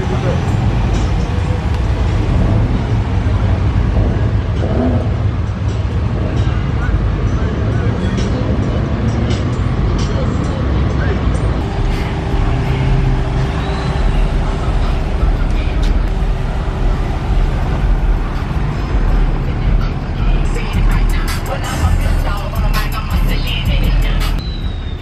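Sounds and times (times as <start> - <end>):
indistinct voices: 0.0 - 24.4
low rumble of vehicles: 0.0 - 25.0.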